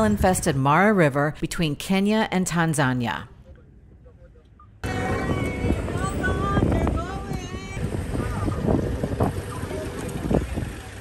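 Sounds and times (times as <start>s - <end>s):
vehicle engine rumble: 3.3s - 11.0s
faint voices: 3.4s - 11.0s
wind buffeting microphone: 4.8s - 11.0s.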